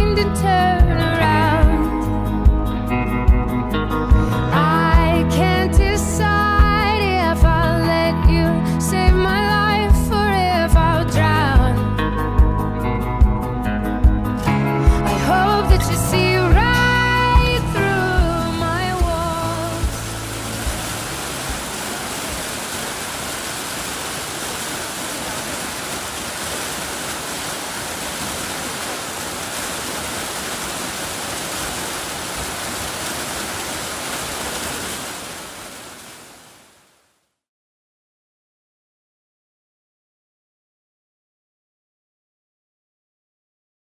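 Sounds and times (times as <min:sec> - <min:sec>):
waterfall rushing: 0:17.5 - 0:36.9.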